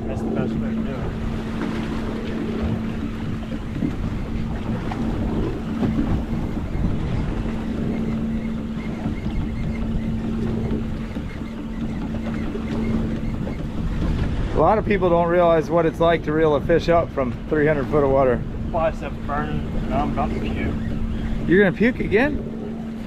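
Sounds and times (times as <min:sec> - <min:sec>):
outboard motor idling: 0:00.0 - 0:23.0
sea wash: 0:00.0 - 0:23.0
wind noise on microphone: 0:00.0 - 0:23.0.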